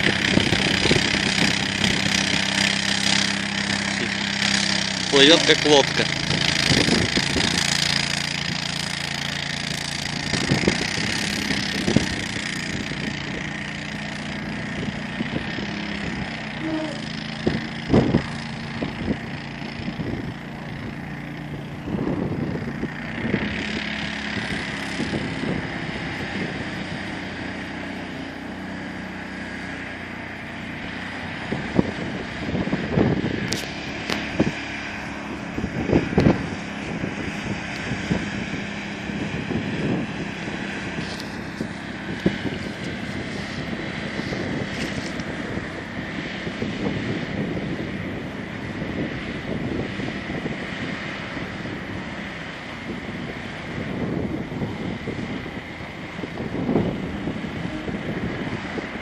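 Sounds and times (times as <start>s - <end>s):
tracks churning water: 0.0s - 59.0s
vehicle engine running: 0.0s - 59.0s.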